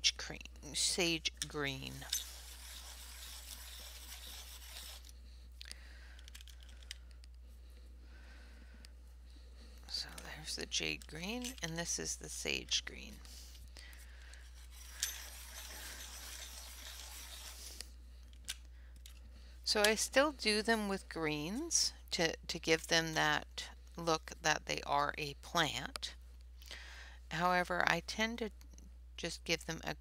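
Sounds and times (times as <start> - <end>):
pencil scratching on paper: 1.6 - 5.1, 14.6 - 17.8.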